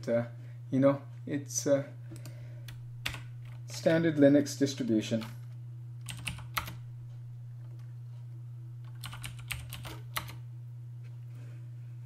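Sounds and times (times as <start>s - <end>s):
steady low hum: 0.0s - 12.0s
keyboard typing: 5.2s - 6.8s, 8.8s - 10.4s.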